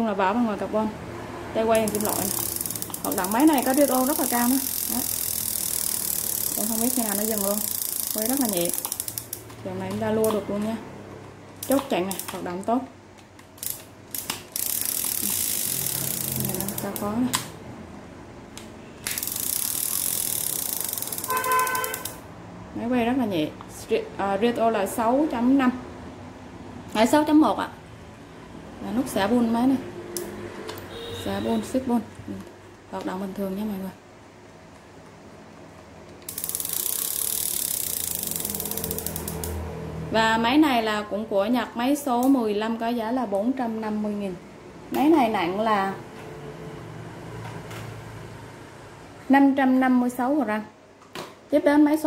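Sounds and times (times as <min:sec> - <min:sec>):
fishing reel whirring: 0:01.8 - 0:09.5, 0:13.6 - 0:17.1, 0:19.1 - 0:22.2, 0:36.3 - 0:39.6
fishing reel clicks: 0:01.8 - 0:09.6, 0:11.6 - 0:12.4, 0:13.6 - 0:17.2, 0:19.0 - 0:22.2, 0:36.3 - 0:39.6.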